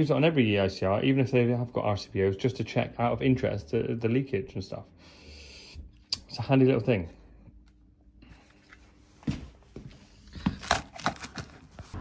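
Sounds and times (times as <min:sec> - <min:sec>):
footsteps on tiled floor: 0:09.1 - 0:12.0.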